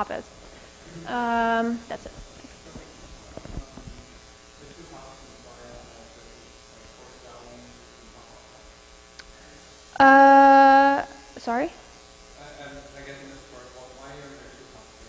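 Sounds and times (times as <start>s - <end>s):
buzzy hum through pa: 0.0s - 15.0s.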